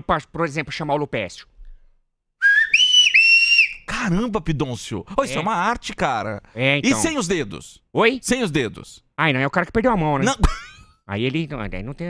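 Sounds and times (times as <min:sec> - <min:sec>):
loud finger whistle: 0:02.4 - 0:03.9.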